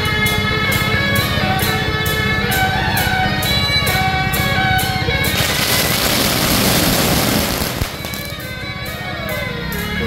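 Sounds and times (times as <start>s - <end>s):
steady percussion: 0.0s - 9.0s
procession band melody: 0.0s - 10.0s
firecrackers crackling: 5.2s - 8.6s.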